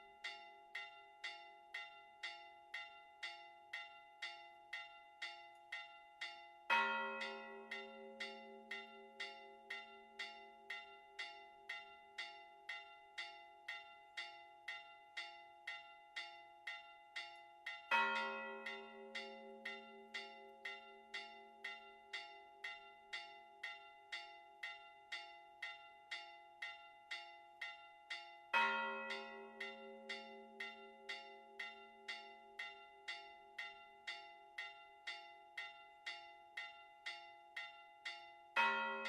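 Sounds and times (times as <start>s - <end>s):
church bell struck rapidly: 6.7s - 9.7s, 17.9s - 21.0s, 28.5s - 31.8s, 38.6s - 39.0s.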